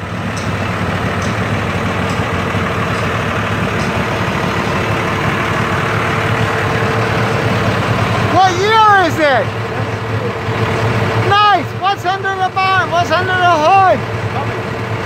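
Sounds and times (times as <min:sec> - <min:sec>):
truck engine idling: 0:00.0 - 0:15.0.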